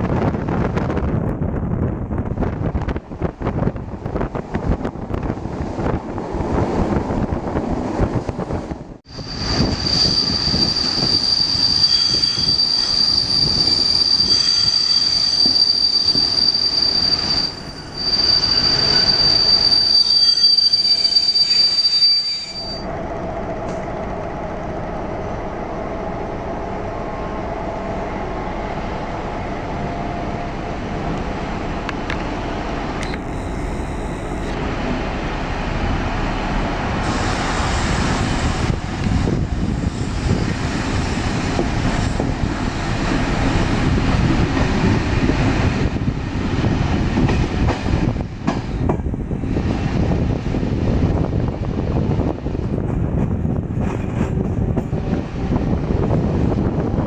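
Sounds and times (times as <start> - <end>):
high-pitched wheel squeal: 9.1 - 22.8
train wheels clattering on track: 37.0 - 50.3, 52.4 - 55.2.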